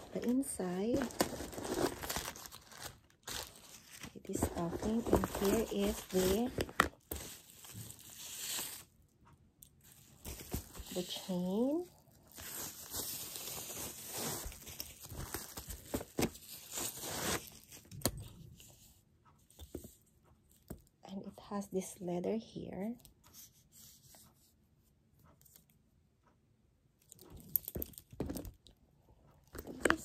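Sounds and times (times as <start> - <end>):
packaging rustling and crinkling: 0.0 - 8.9, 9.8 - 18.0.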